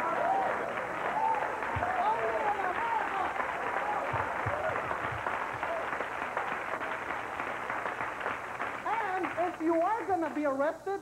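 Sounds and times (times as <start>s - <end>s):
audience clapping: 0.0s - 10.6s.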